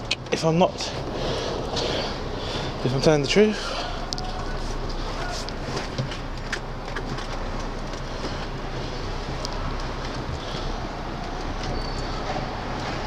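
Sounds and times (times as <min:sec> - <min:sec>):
diesel truck engine rumbling: 0:00.0 - 0:13.0.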